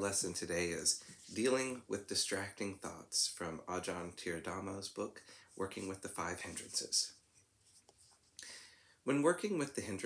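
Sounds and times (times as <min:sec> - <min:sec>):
soft rustle: 0:00.0 - 0:01.9, 0:05.3 - 0:08.4.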